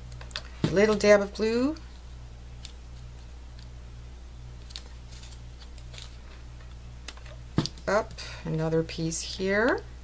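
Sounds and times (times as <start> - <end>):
paper rustling: 4.6 - 6.4.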